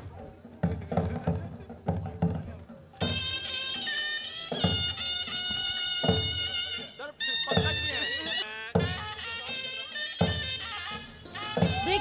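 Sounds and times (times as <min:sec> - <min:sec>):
heavy drum beats: 0:08.7 - 0:09.2, 0:10.2 - 0:12.0.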